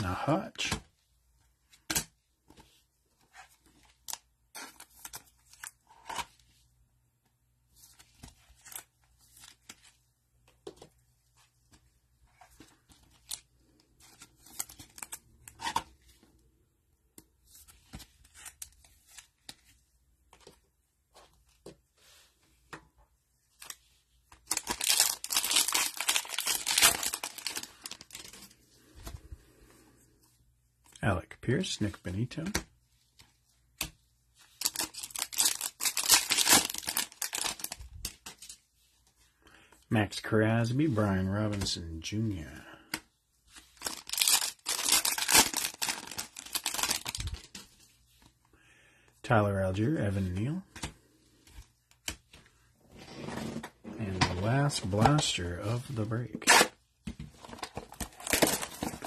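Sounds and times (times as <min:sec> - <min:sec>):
trading cards clicking and rustling: 0:23.6 - 0:28.4
foil pack tearing and crinkling: 0:24.5 - 0:28.3, 0:34.6 - 0:37.8, 0:43.8 - 0:47.4, 0:57.8 - 0:59.0.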